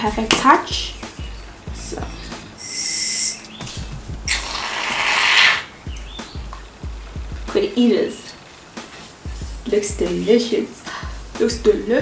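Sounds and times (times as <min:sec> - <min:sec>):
aerosol can hissing: 0:02.5 - 0:03.4, 0:04.3 - 0:05.6.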